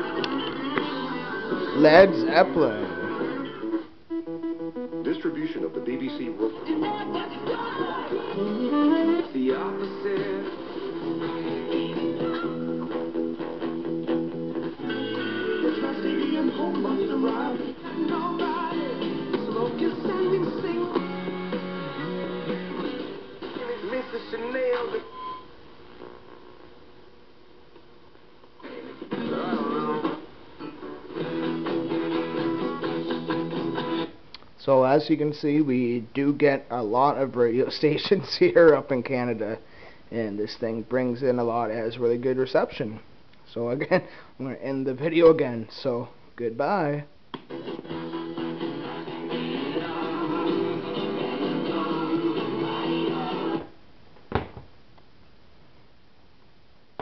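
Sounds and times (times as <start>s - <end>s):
radio static hiss: 0.0s - 6.8s, 21.1s - 53.8s
guitar music on radio: 0.0s - 39.6s, 46.6s - 53.8s.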